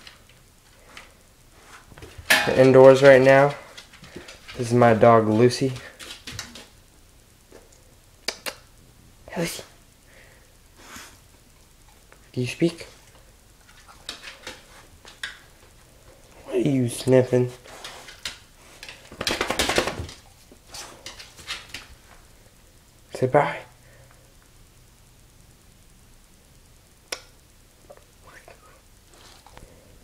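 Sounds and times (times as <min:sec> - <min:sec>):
sharp clicks on tiled floor: 0:05.7 - 0:06.8, 0:13.6 - 0:15.6, 0:17.7 - 0:20.3, 0:21.0 - 0:22.0.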